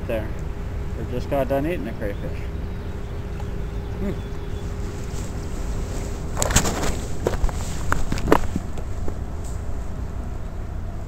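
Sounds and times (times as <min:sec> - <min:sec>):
wind rumble on microphone: 0:00.4 - 0:11.0
rustling handling noise: 0:04.5 - 0:10.0.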